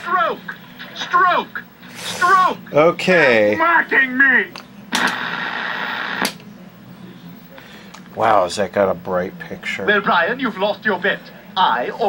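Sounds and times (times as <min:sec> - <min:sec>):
tv static hiss: 0:00.0 - 0:12.0
tv click: 0:04.5 - 0:05.3, 0:06.2 - 0:06.5.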